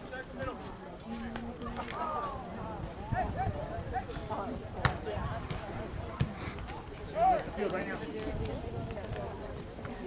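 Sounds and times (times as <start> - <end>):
soccer ball kick thud: 4.8 - 6.4.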